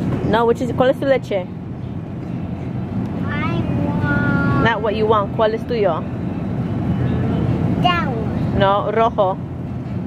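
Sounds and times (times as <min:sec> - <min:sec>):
grocery store background rumble: 0:00.0 - 0:10.0
child's voice: 0:03.2 - 0:04.7, 0:07.8 - 0:08.4.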